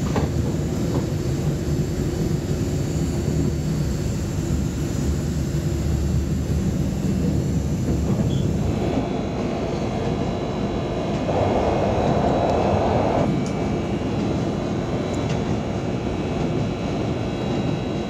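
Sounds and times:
train rumbling inside carriage: 0.0s - 18.0s
train rushing noise: 0.0s - 18.0s.

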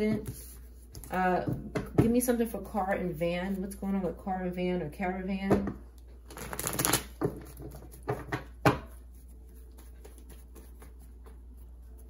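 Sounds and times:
cards rustling shuffle: 6.3s - 8.0s.

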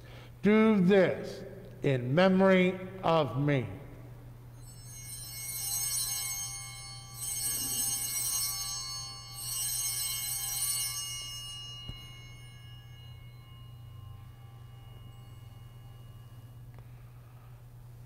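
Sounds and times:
handbells jingling: 4.5s - 17.8s.

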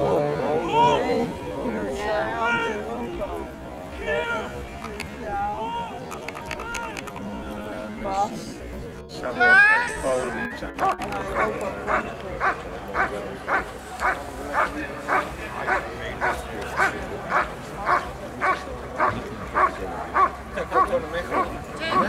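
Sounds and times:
dog barking: 11.4s - 22.0s.

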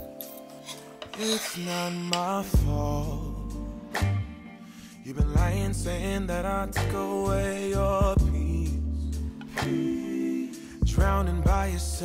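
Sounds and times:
background r and b music: 0.0s - 12.0s
knife scraping cutting board: 0.5s - 2.4s.

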